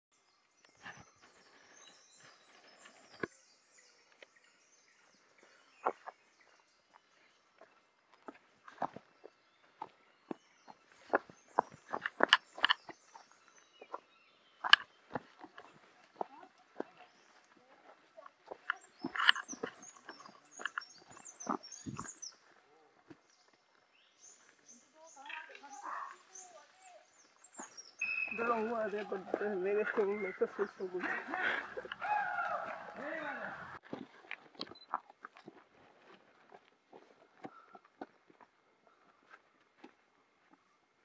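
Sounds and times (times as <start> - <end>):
birds chirping: 0.1 - 41.0
footsteps on dry leaves: 25.6 - 37.6.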